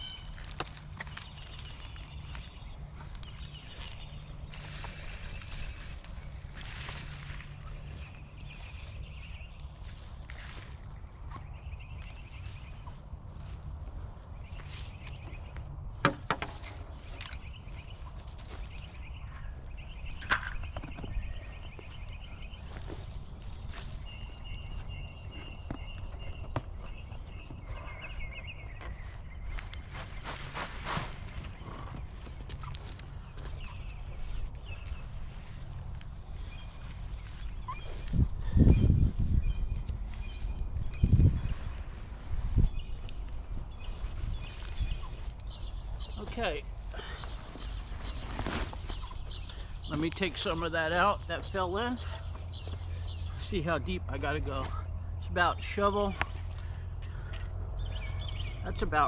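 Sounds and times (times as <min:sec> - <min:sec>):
bird trilling chirps: 0:00.0 - 0:00.5, 0:36.4 - 0:41.5, 0:47.0 - 0:53.5
wind rumble on microphone: 0:00.8 - 0:46.2.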